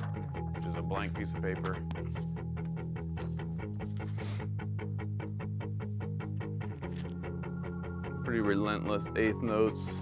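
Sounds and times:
rock backing track guitar and bass: 0:00.0 - 0:10.0.

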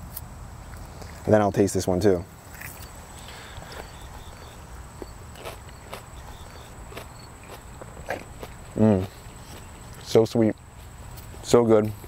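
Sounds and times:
person chewing crisp crunches: 0:02.4 - 0:12.0.

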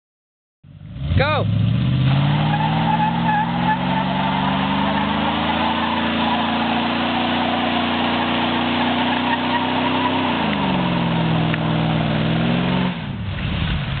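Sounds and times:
truck engine revving: 0:00.7 - 0:13.6
tyres squealing on pavement: 0:01.9 - 0:12.9.

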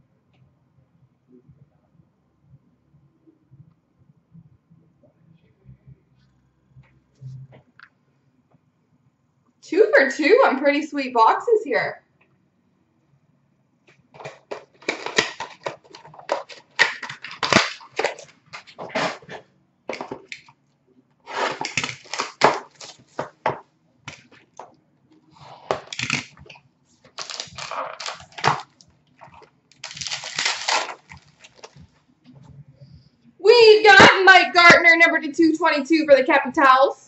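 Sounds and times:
packaging tearing and crinkling: 0:14.2 - 0:20.5, 0:21.3 - 0:23.4, 0:25.7 - 0:31.8.

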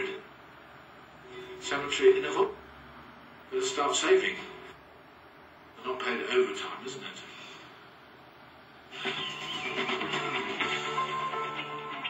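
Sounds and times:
tv channel sound: 0:00.0 - 0:12.0.

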